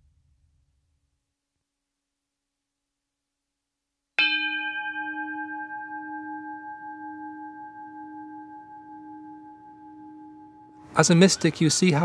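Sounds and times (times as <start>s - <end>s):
bell ringing: 4.2s - 12.0s.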